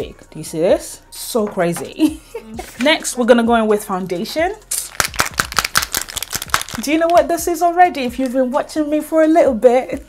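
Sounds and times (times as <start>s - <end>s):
bottle rattling when shaken: 4.7s - 7.4s.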